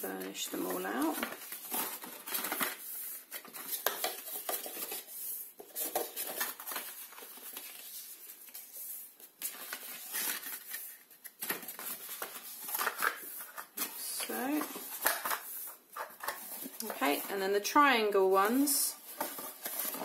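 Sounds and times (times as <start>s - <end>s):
card being folded and creased: 1.0s - 17.3s.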